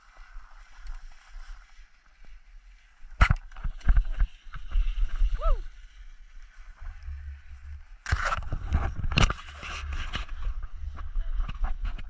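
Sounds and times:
wind on microphone: 6.8s - 12.0s.

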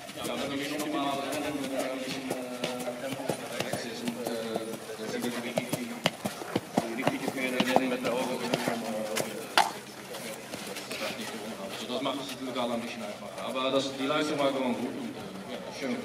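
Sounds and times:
hooves knocking on paving stones: 0.0s - 11.2s
voices talking: 0.0s - 16.0s.

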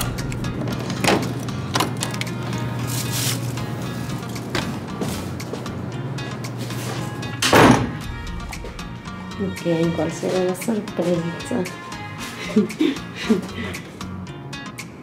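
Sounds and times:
background music: 0.0s - 15.0s
loud thump: 7.4s - 9.0s.

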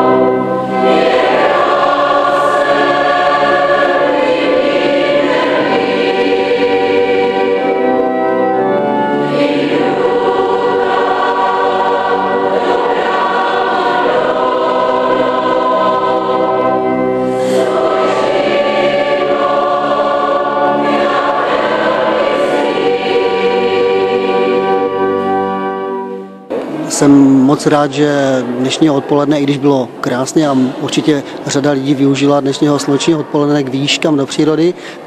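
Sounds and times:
choir singing held chords: 0.0s - 35.0s.

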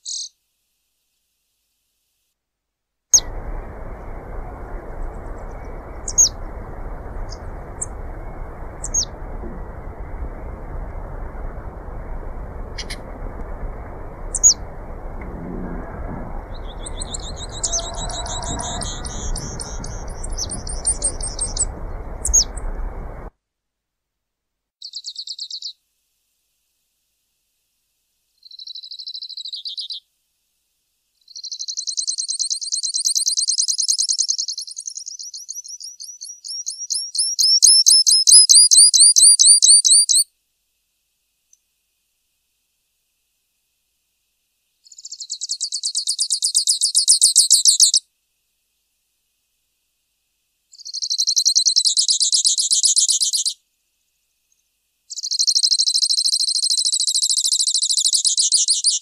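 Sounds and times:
finch singing chirps and trills: 3.2s - 10.2s, 12.2s - 15.1s, 16.4s - 23.2s, 31.3s - 40.2s, 50.8s - 53.6s
low background rumble: 3.2s - 23.3s.

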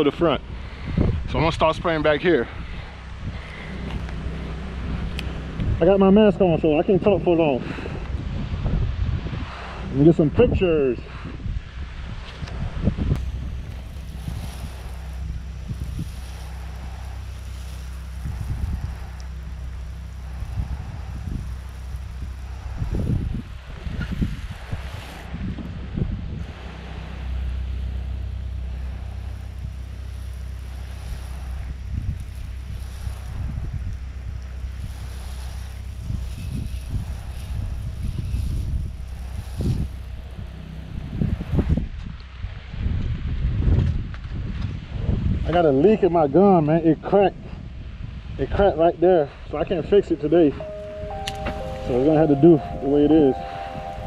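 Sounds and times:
wind buffeting microphone: 0.0s - 50.7s
spray gun hissing: 13.2s - 25.3s, 26.7s - 41.1s.

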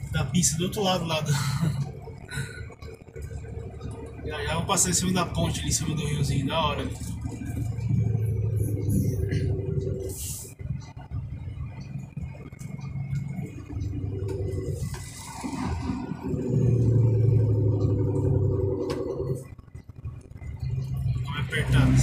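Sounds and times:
truck diesel engine droning: 0.0s - 22.0s.

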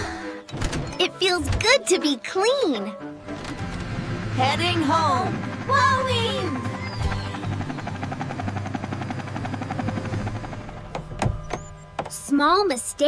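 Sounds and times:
background music: 0.0s - 13.0s
cartoon helicopter rotor whirring: 3.4s - 13.0s.

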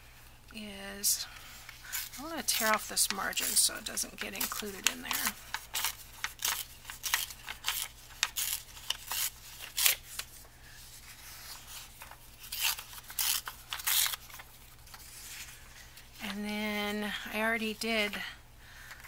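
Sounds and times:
paper tearing: 1.9s - 10.3s, 11.4s - 15.0s.

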